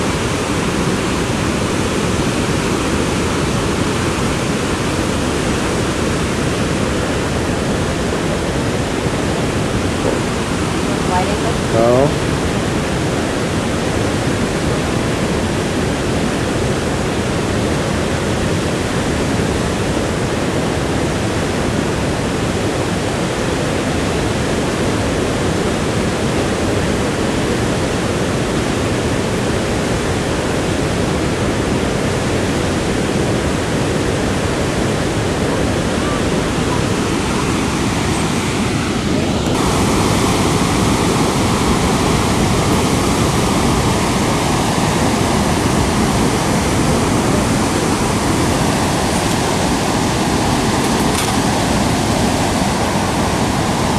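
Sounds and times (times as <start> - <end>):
waterfall roaring: 0.0 - 53.9.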